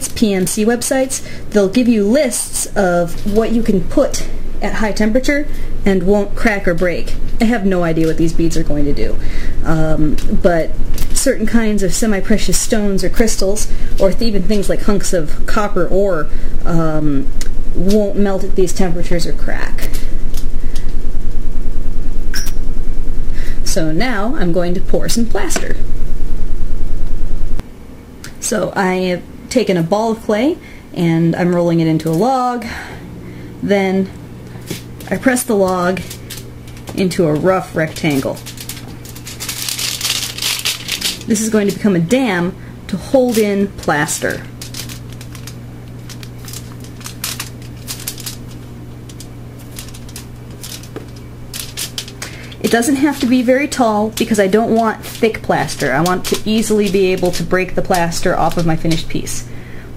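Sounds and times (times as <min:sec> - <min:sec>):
low fluttering hum: 0:00.0 - 0:27.7, 0:32.7 - 0:59.9
aluminium foil crinkling: 0:34.5 - 0:59.5.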